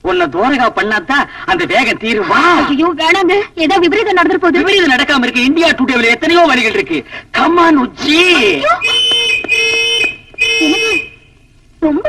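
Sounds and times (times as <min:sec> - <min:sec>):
whistle blasts: 0:08.6 - 0:11.4.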